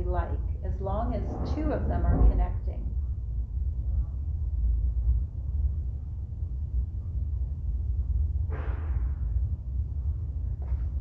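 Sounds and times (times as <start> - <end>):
microphone handling rumble: 0.0 - 4.2.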